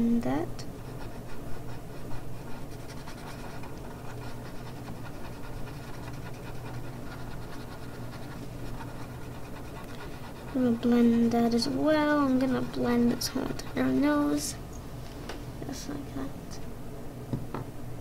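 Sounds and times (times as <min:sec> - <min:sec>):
steady low hum: 0:00.0 - 0:18.0
blending stump rubbing on paper: 0:00.8 - 0:14.5.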